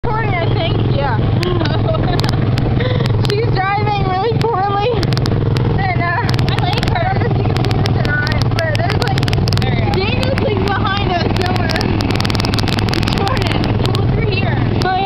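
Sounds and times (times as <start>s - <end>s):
small gasoline engine droning: 0.0s - 15.0s
voices: 0.0s - 15.0s
wind rumble on microphone: 0.0s - 15.0s.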